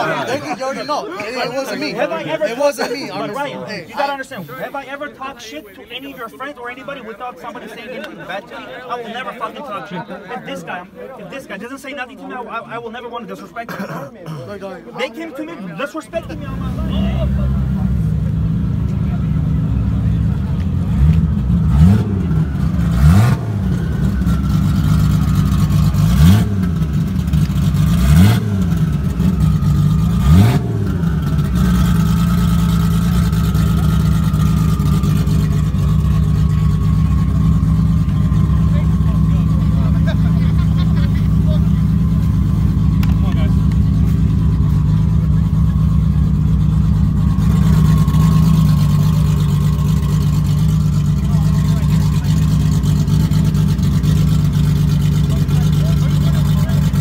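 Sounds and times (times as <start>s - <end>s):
car engine idling and revving: 15.8s - 57.0s.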